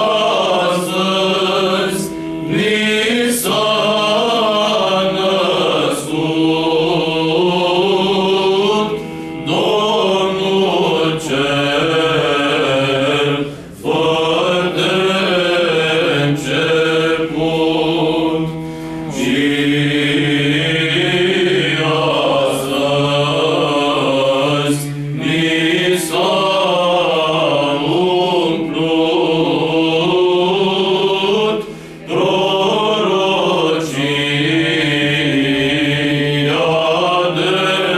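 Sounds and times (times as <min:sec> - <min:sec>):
male choir singing unaccompanied: 0:00.0 - 0:37.9.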